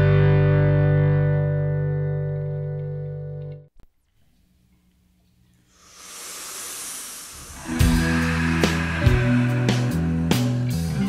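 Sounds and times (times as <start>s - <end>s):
distorted electric guitar chord: 7.6s - 11.0s.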